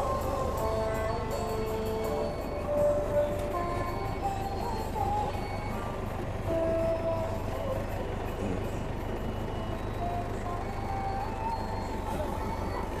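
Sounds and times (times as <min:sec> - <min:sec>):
forklift engine rumbling: 0:00.0 - 0:13.0.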